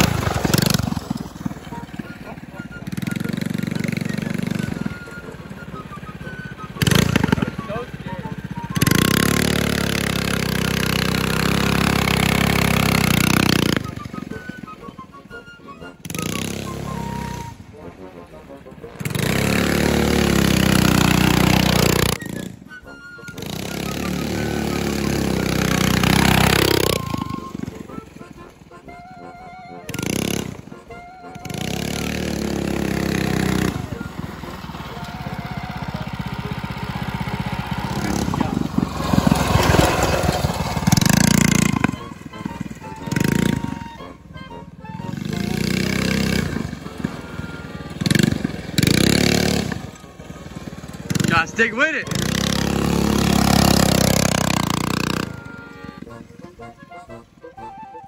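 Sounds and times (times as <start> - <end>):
small engine revving: 0.0 - 58.0.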